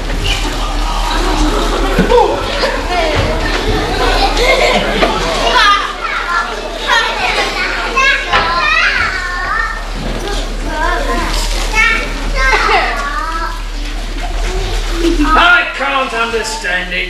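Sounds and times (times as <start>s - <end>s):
children shouting: 0.0s - 15.7s.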